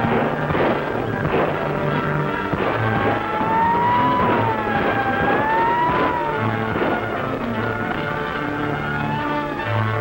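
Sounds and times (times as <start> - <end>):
dramatic orchestral music: 0.0 - 10.0
wailing siren: 0.0 - 10.0.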